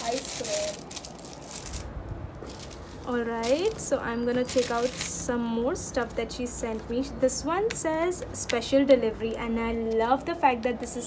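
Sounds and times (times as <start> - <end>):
paper and cellophane rustling: 0.0 - 5.3.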